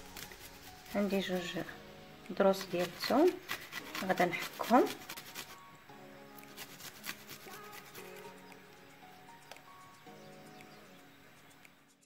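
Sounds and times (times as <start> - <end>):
soft background music: 0.0 - 12.0
garlic scraping on grater: 2.5 - 5.6, 6.4 - 8.0.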